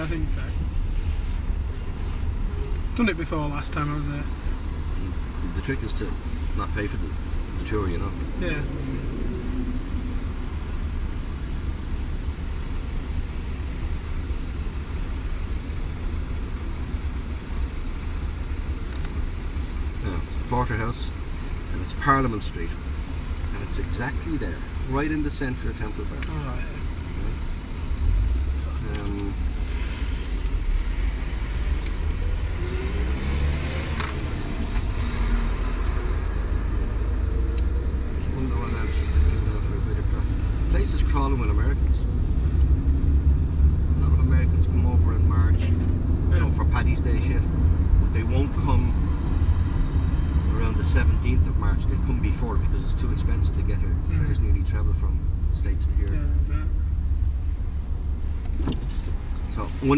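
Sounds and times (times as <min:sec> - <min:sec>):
car engine and road noise: 0:00.0 - 0:59.9.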